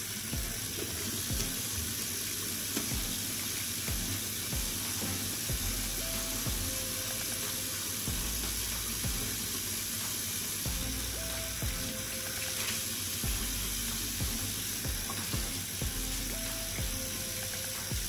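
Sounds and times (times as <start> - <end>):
soft background music: 0.0 - 18.0.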